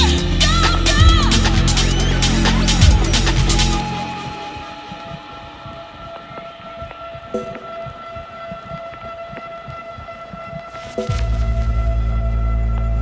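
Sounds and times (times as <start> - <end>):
held steady synth tones: 0.0 - 13.0
loud breakbeat house beat: 0.0 - 13.0
noise sweep: 0.0 - 13.0.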